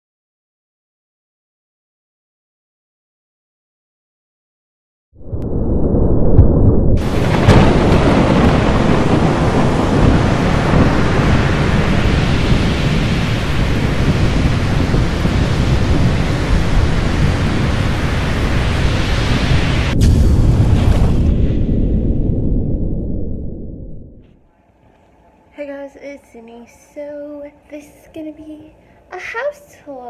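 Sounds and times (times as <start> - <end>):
rolling thunder rumble: 5.2 - 24.3
heavy rain hiss: 7.0 - 20.3.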